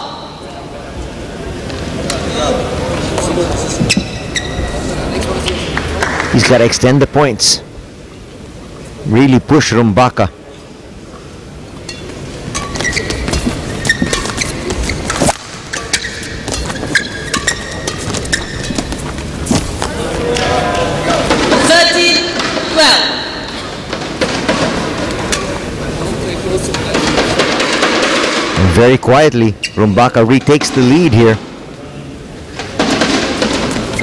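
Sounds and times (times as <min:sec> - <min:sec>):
crowd voices: 0:00.0 - 0:34.0
shoes squeaking on court: 0:03.2 - 0:05.1, 0:11.8 - 0:21.1, 0:33.5 - 0:34.0
racket hitting shuttlecock: 0:11.9 - 0:20.5.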